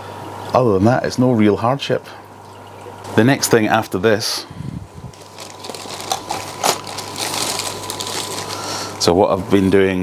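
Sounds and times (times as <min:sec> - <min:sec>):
plastic containers rustling: 0:05.1 - 0:08.9.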